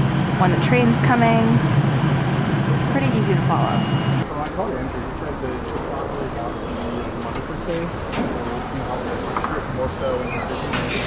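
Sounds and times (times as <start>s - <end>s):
distant traffic: 0.0s - 11.0s
low subway platform hum: 0.0s - 11.0s.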